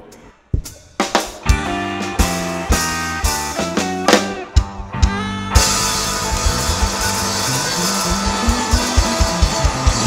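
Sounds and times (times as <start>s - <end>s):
drum kit beat: 0.0s - 10.0s
soul and blues band playing: 1.0s - 10.0s
electric guitar: 1.3s - 10.0s
bass notes: 1.4s - 10.0s.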